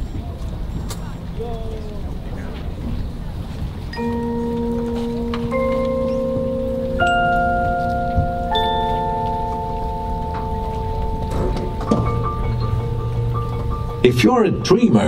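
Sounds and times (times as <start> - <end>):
struck bell-like mallet notes: 3.9 - 15.0.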